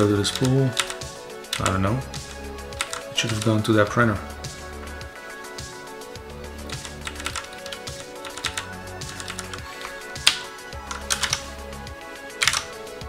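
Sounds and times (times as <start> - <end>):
background music: 0.0 - 13.0
computer keyboard key clicks: 9.2 - 11.4, 12.4 - 12.7.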